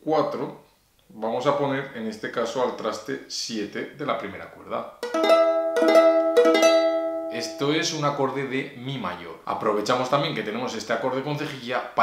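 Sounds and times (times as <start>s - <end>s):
ukulele strumming a chord: 5.0s - 7.7s.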